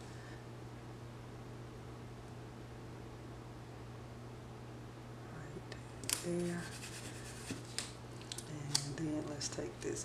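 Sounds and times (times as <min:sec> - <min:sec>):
paper sticker clicks and crackles: 0:06.0 - 0:06.5, 0:07.5 - 0:09.0.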